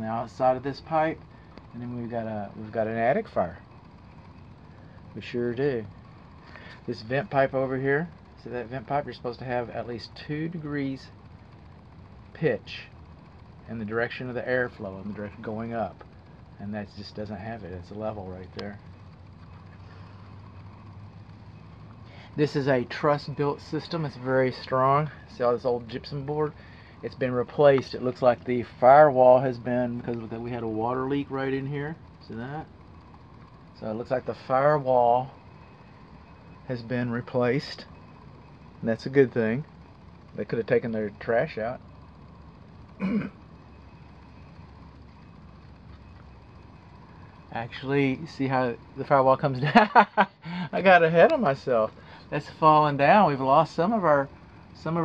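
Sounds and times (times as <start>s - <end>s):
faint hiss: 0.0s - 55.0s
low mechanical hum: 0.0s - 55.0s
person coughing: 43.0s - 43.4s.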